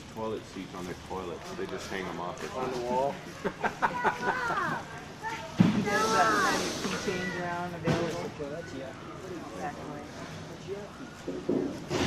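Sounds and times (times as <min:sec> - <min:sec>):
people talking: 0:00.2 - 0:11.7.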